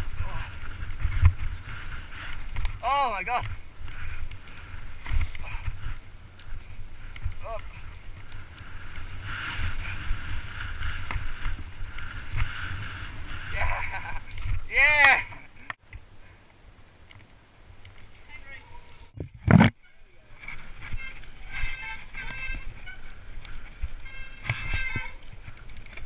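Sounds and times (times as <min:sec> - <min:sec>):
wind buffeting microphone: 0:00.0 - 0:15.5
bike tyres rattling over dirt: 0:00.0 - 0:15.6, 0:17.8 - 0:26.0.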